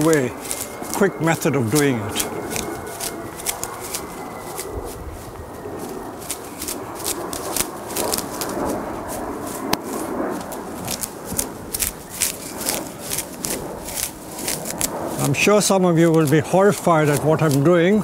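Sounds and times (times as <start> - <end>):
foliage rustling: 0.0 - 18.0
leaves snapping off: 0.0 - 18.0.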